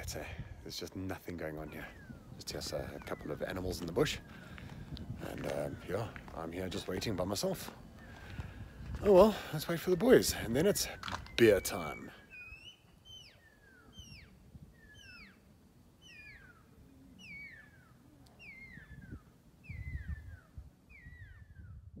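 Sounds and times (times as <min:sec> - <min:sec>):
bird whistling descending call: 0:10.8 - 0:21.9.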